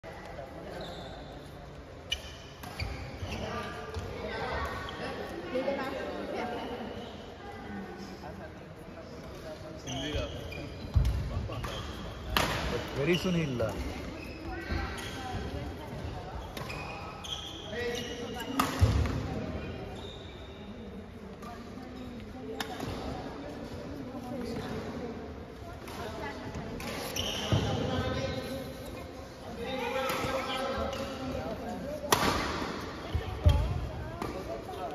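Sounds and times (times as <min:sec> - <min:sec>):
racket hitting shuttlecock: 0:12.3 - 0:12.7, 0:18.6 - 0:19.3, 0:32.0 - 0:34.5
short high squeak: 0:26.8 - 0:28.6.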